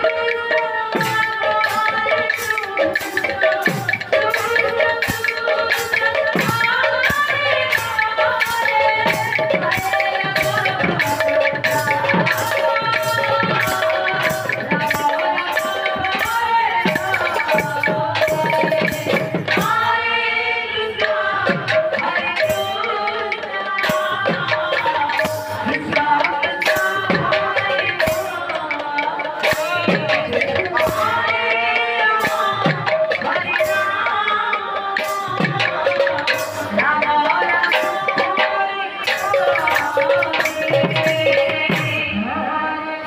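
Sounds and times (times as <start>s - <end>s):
women singing through microphones: 0.0s - 43.0s.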